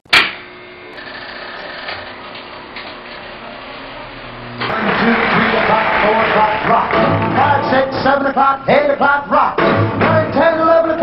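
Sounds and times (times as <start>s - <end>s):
jukebox mechanism whirring: 0.0s - 5.8s
loud clunk: 0.1s - 0.5s.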